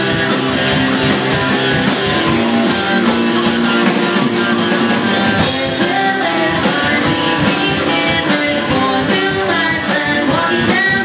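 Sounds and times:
drum kit: 0.0s - 11.0s
strummed electric guitar: 0.0s - 11.0s.

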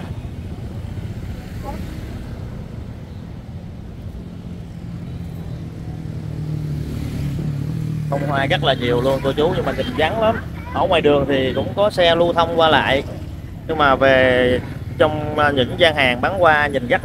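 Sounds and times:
road traffic hum: 0.0s - 17.0s
vehicle engine approaching: 0.0s - 17.0s.

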